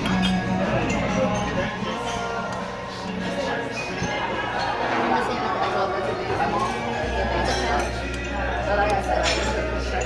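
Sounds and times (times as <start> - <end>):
diners chattering: 0.0 - 10.0
tableware clinking: 0.0 - 10.0.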